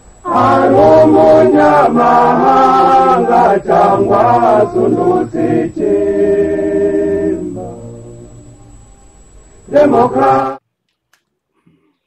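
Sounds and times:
chorus of voices singing: 0.2 - 8.7, 9.7 - 10.6.

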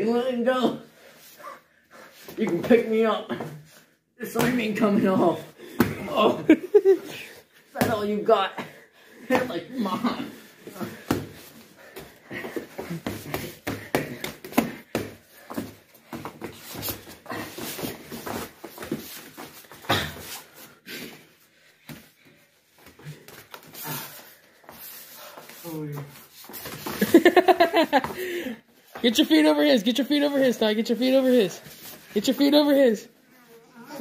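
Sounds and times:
bodies slapping on mats: 2.3 - 4.8, 10.6 - 20.6.

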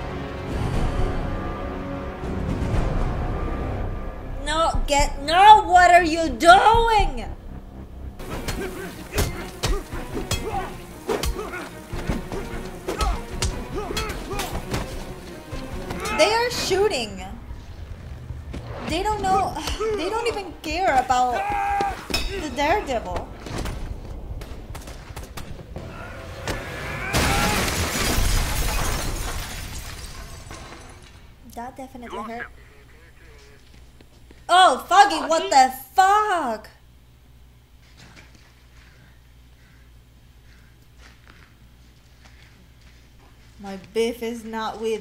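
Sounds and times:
tense music score: 0.0 - 27.9.

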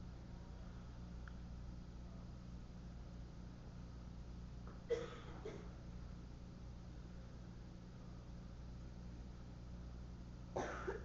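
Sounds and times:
low room hum: 0.0 - 11.0
person coughing: 4.9 - 5.8, 10.6 - 11.0.

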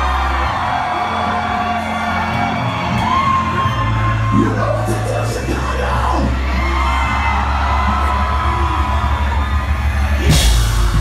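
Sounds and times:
crowd whooping and yelling: 0.0 - 11.0
heavy metal guitars and bass: 0.0 - 11.0.

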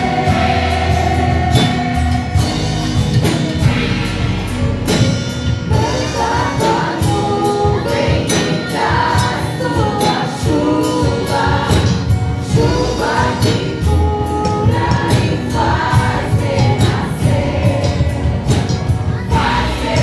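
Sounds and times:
women singing worship song: 0.0 - 2.8, 5.7 - 20.0
steady beat: 0.0 - 13.3.

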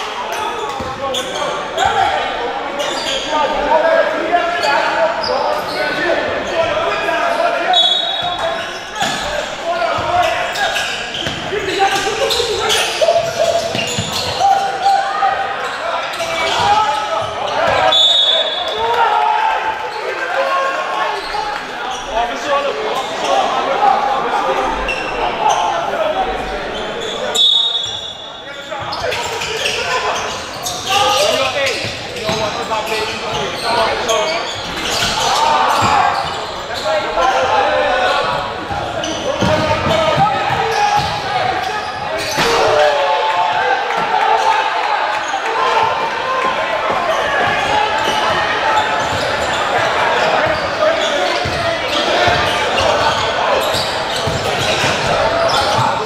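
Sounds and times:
din of voices in a gym: 0.0 - 56.0.

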